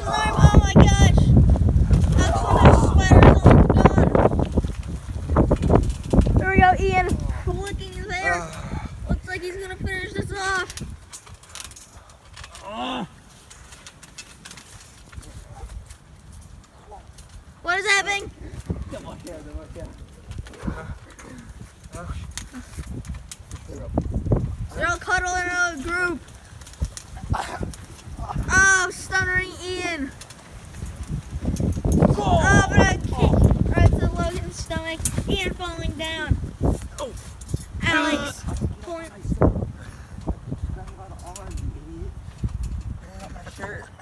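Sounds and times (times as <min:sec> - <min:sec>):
person shouting: 0:00.0 - 0:01.4, 0:02.1 - 0:04.2, 0:08.0 - 0:08.9, 0:32.1 - 0:33.4
boys calling out: 0:00.0 - 0:04.6, 0:06.3 - 0:10.9, 0:12.5 - 0:13.4, 0:16.8 - 0:19.3, 0:24.7 - 0:26.3, 0:27.1 - 0:30.2, 0:32.0 - 0:39.4.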